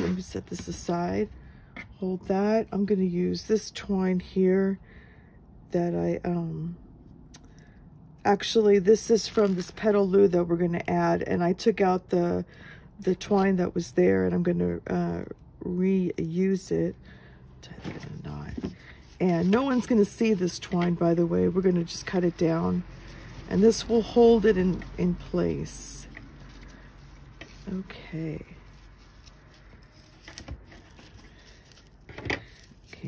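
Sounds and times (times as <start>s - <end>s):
twine and ribbon rustling: 0.0s - 3.6s, 16.3s - 33.0s.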